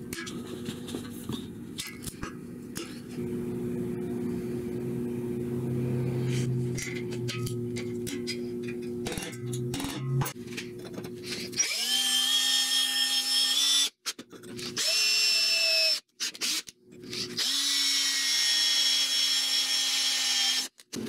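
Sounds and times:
cordless drill boring through metal: 11.6s - 13.9s, 14.6s - 20.8s.

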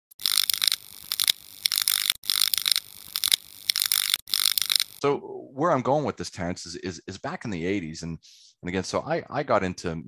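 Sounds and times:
sharp clicks: 0.1s - 5.0s.

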